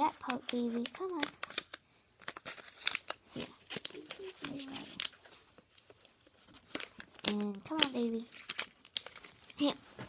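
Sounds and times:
wrapping paper crinkling and tearing: 0:00.0 - 0:09.9.

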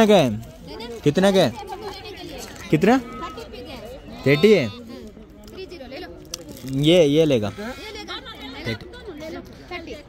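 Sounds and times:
people talking overlapping: 0:00.0 - 0:10.0.

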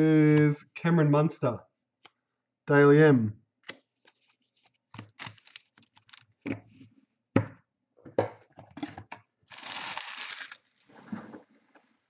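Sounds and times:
packaging rustling: 0:04.1 - 0:06.4, 0:09.5 - 0:11.0.

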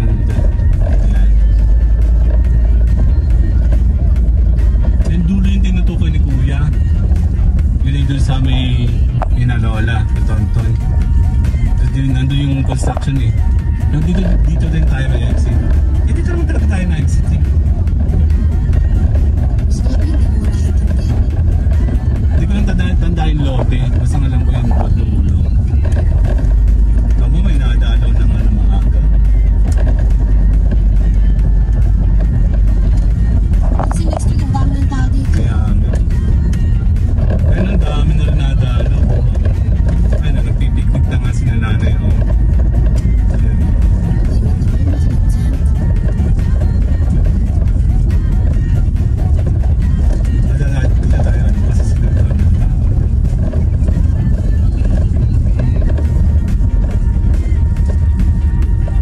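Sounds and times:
car driving rumble inside cabin: 0:00.0 - 0:59.0
music: 0:00.0 - 0:59.0.

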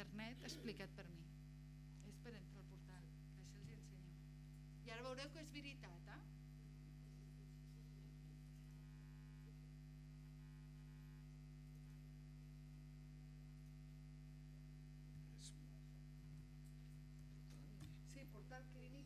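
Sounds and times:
low electrical hum: 0:00.0 - 0:19.0.

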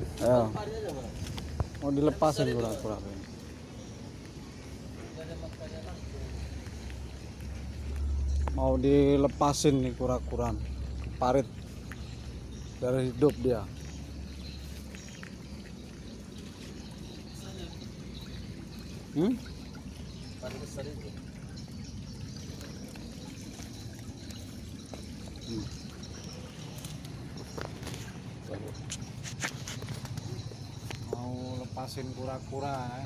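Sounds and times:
water trickling in concrete ditch: 0:00.0 - 0:33.0
handling clicks and scuffs: 0:28.9 - 0:31.1.

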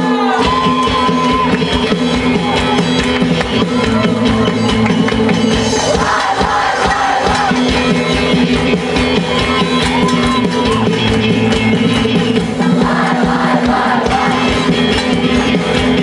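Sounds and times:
live band playing: 0:00.0 - 0:16.0
driving drum beat: 0:00.1 - 0:16.0
choir singing: 0:05.7 - 0:07.8, 0:12.4 - 0:15.0.

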